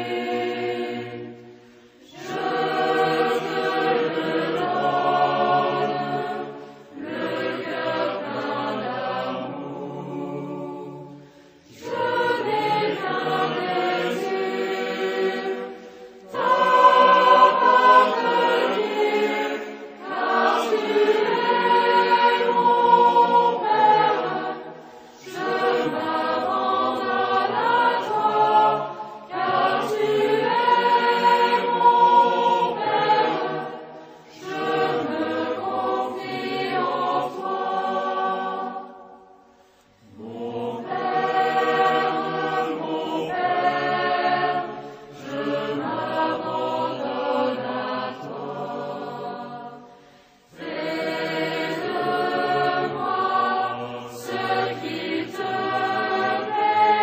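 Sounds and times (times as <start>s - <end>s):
choir singing a hymn: 0.0s - 57.0s
singers breathing: 1.3s - 2.0s, 6.5s - 7.0s, 11.1s - 11.8s, 15.6s - 16.4s, 24.7s - 25.3s, 33.9s - 34.4s, 39.4s - 40.1s, 44.7s - 45.2s, 49.8s - 50.6s.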